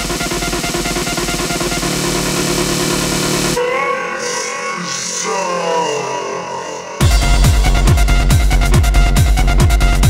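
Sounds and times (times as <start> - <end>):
driving beat with heavy bass: 0.0 - 3.6, 7.0 - 10.0.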